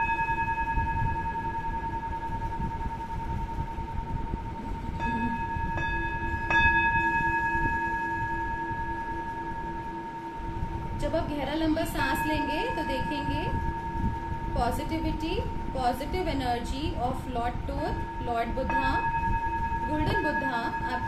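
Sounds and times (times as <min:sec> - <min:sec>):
low held note: 0:00.0 - 0:11.0
struck bell tones ringing: 0:04.7 - 0:10.4, 0:17.9 - 0:21.0.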